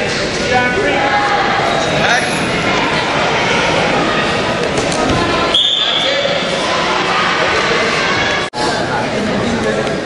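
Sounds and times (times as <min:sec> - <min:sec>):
referee's whistle: 0:05.5 - 0:06.2.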